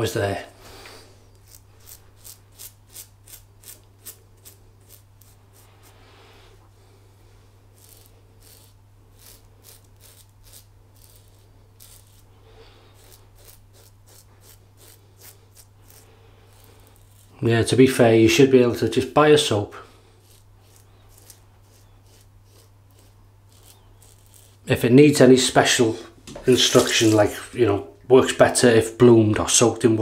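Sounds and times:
razor scraping stubble: 0:00.8 - 0:06.1, 0:07.7 - 0:27.6.

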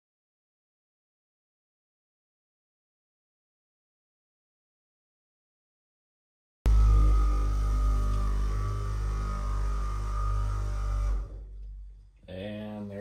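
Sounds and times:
polisher humming: 0:06.7 - 0:11.4
man's voice: 0:12.3 - 0:13.0.

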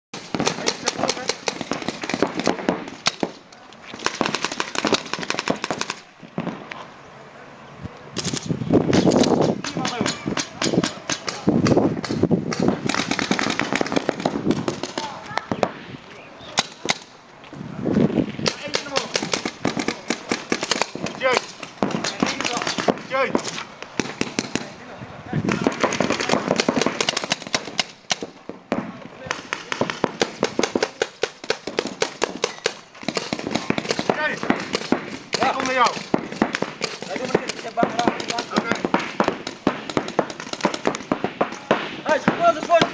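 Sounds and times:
paintball markers firing rapidly: 0:00.2 - 0:06.5, 0:08.2 - 0:15.7, 0:18.4 - 0:24.8, 0:25.5 - 0:28.4, 0:29.3 - 0:42.9.

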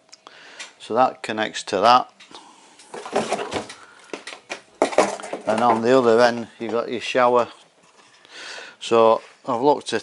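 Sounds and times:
plastic fittings rustling and clattering: 0:02.8 - 0:08.3.

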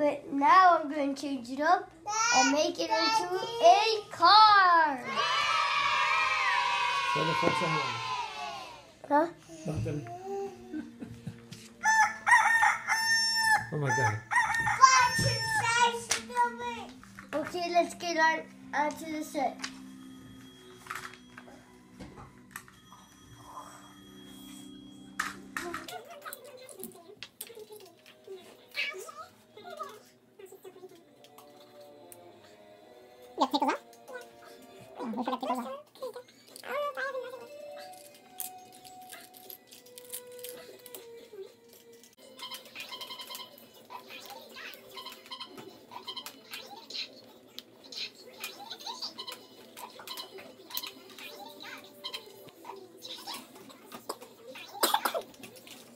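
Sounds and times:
background music: 0:00.0 - 0:55.9.

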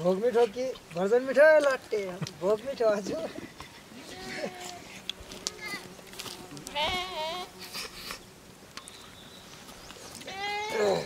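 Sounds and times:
sheep bleating: 0:03.9 - 0:04.9, 0:06.6 - 0:07.5, 0:10.2 - 0:11.0.

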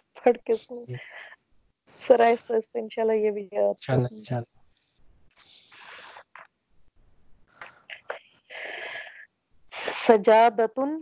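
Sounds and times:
person whispering: 0:00.3 - 0:01.2, 0:02.0 - 0:02.6, 0:03.8 - 0:04.4, 0:05.8 - 0:06.4, 0:07.6 - 0:08.2.

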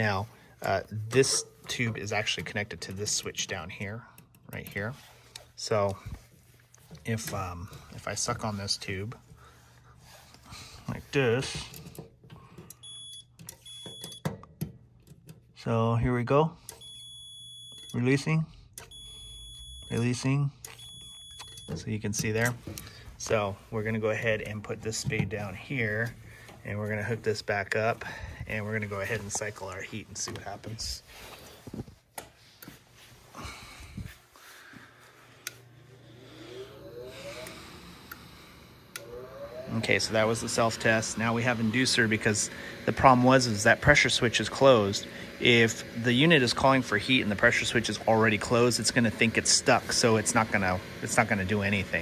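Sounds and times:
multimeter short high beeps: 0:12.8 - 0:14.3, 0:16.7 - 0:18.0, 0:18.8 - 0:20.0, 0:20.7 - 0:21.8
motor humming and whining: 0:35.0 - 0:52.0.

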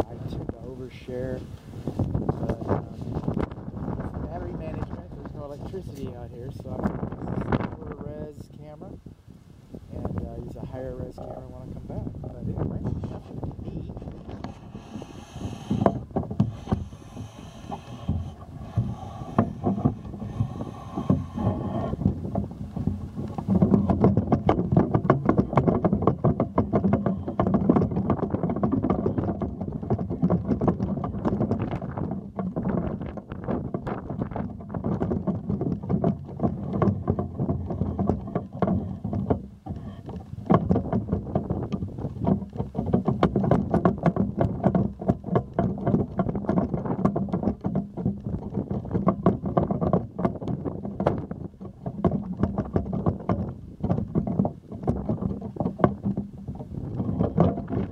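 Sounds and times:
wind buffeting microphone: 0:00.0 - 0:57.9
pole handling rattle: 0:10.6 - 0:57.9.

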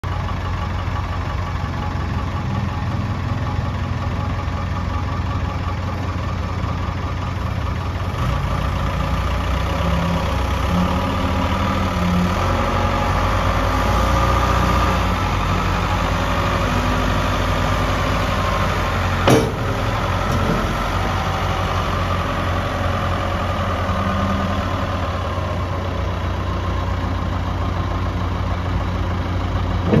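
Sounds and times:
diesel engine running: 0:00.0 - 0:30.0
sharp metal clank: 0:19.3 - 0:19.8.

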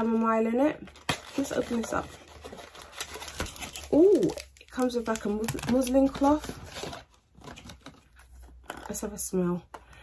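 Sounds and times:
packaging rustling and crinkling: 0:00.4 - 0:09.0.

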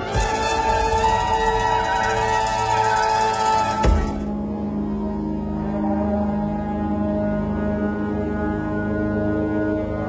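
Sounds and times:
war horns low drone: 0:00.0 - 0:10.0.

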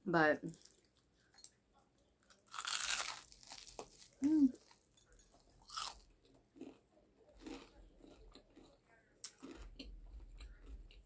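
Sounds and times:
soft chewing: 0:00.5 - 0:11.0
crunch of biting toast: 0:02.3 - 0:04.8, 0:05.6 - 0:06.0, 0:06.6 - 0:06.8, 0:07.4 - 0:10.9.

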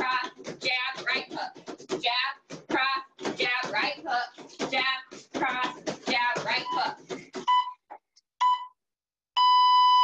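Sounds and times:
electronic timer beeping: 0:07.4 - 0:07.8, 0:08.4 - 0:08.8, 0:09.4 - 0:10.0.

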